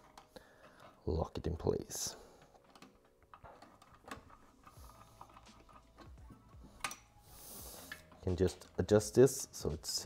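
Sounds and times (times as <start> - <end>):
screwdriver clicks and scrapes: 2.4 - 8.9.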